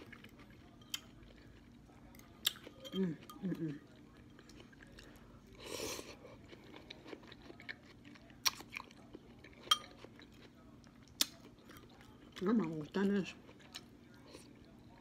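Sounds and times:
person chewing noodles: 0:00.0 - 0:15.0.

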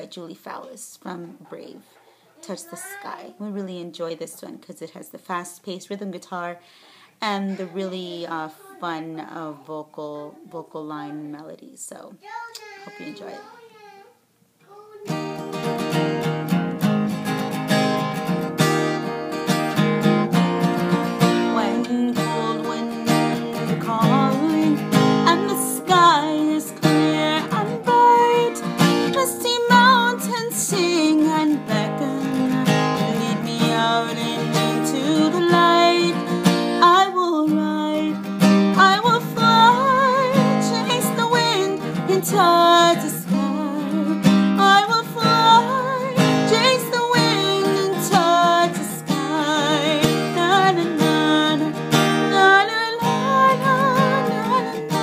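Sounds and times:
fast strummed acoustic guitar: 0:15.1 - 0:36.8, 0:38.1 - 0:55.0.

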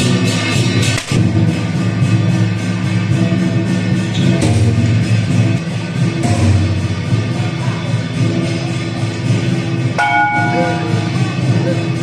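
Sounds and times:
loud music: 0:00.0 - 0:12.0
metal bell strike: 0:10.0 - 0:11.3.

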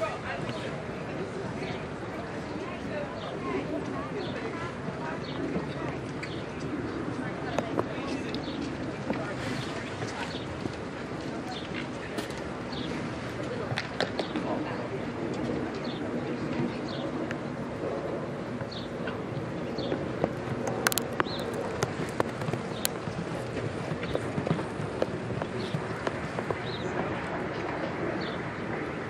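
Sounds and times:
background murmur: 0:00.0 - 0:29.0
birds chirping: 0:15.7 - 0:27.2
sharp clicks and knocks: 0:20.2 - 0:23.2.

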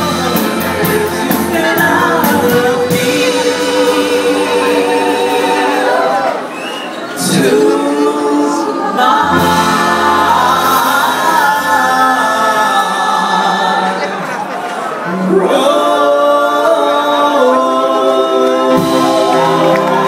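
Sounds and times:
women singing in harmony: 0:00.0 - 0:06.5, 0:07.2 - 0:14.5, 0:15.2 - 0:20.0.

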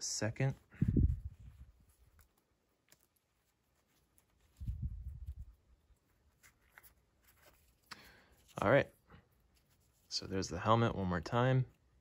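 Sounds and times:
light scratchy rubs and clicks: 0:00.8 - 0:10.5.

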